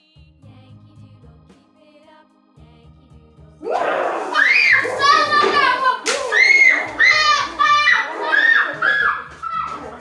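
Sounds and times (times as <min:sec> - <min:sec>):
child shrieking high-pitched: 0:03.6 - 0:09.8.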